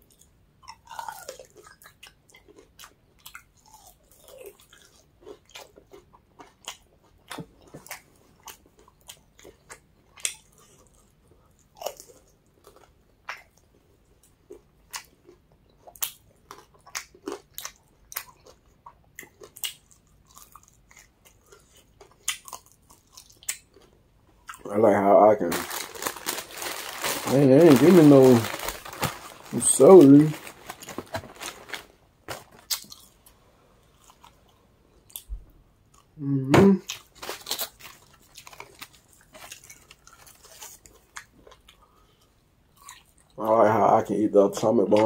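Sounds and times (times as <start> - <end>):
chewing and biting: 0.0 - 13.8, 14.5 - 24.7.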